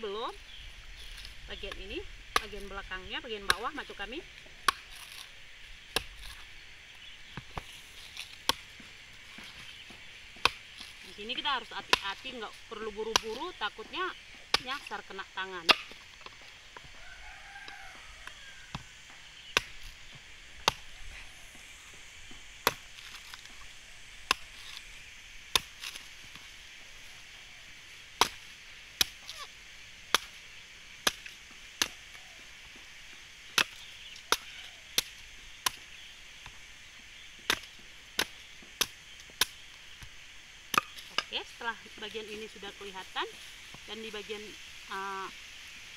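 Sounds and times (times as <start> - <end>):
knife chopping coconut husk: 3.3 - 6.6, 7.3 - 13.7, 14.4 - 16.0, 18.2 - 26.5, 28.1 - 36.6, 37.4 - 41.4.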